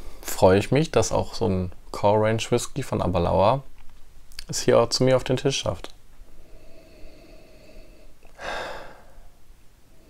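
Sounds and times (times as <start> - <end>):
person sniffing: 6.5 - 9.4.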